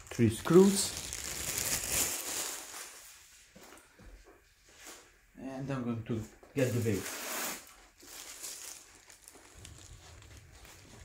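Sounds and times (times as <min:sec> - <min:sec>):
plastic bag rustling: 0:00.0 - 0:03.2, 0:06.6 - 0:11.0.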